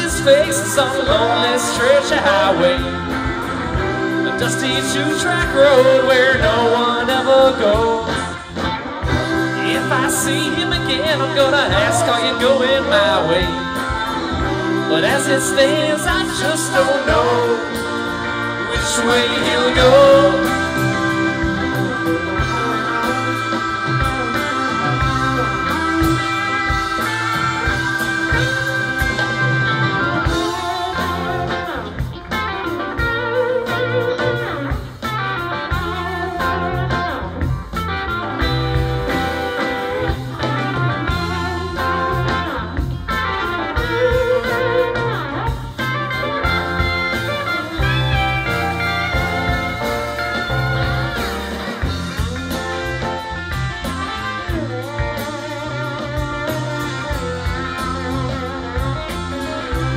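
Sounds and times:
electric guitar lead line: 0:00.0 - 0:59.9
live rock band playing: 0:00.0 - 0:59.9.

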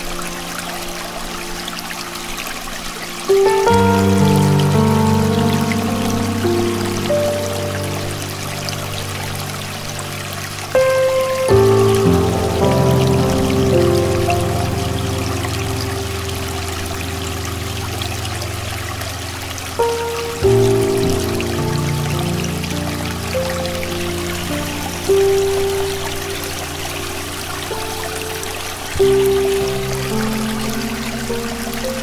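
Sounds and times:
piano playing slow chords: 0:00.0 - 0:32.0
stream rushing: 0:00.0 - 0:32.0.

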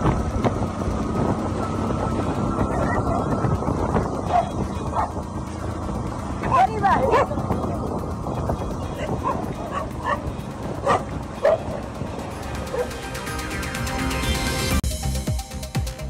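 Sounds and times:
steady low rumble: 0:00.0 - 0:16.0
dog barking and yipping: 0:04.2 - 0:05.2, 0:07.0 - 0:07.4, 0:08.9 - 0:11.9, 0:12.6 - 0:13.0.

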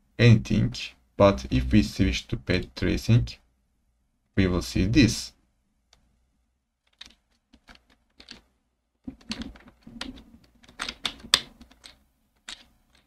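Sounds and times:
computer keyboard typing: 0:06.9 - 0:08.4, 0:09.1 - 0:13.0.

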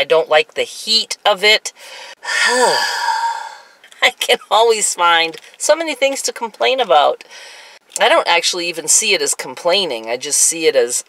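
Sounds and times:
woman sighing: 0:01.9 - 0:03.8.

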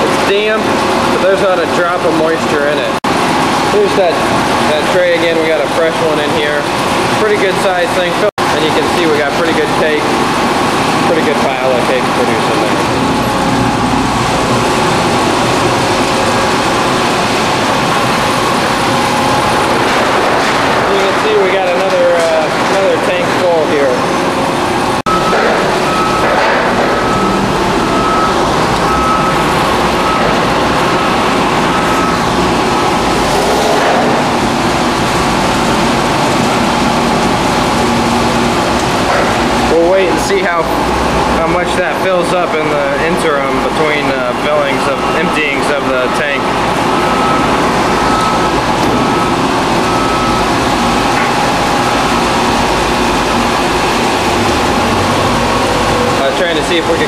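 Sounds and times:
screw press machinery running: 0:00.0 - 0:57.0.

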